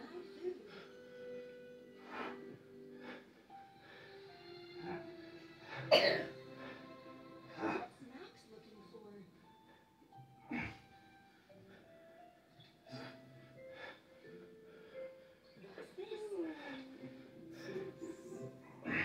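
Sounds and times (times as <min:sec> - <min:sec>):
voices from tv: 0:00.0 - 0:03.2, 0:03.9 - 0:19.0
quiet tv show music: 0:00.0 - 0:19.0.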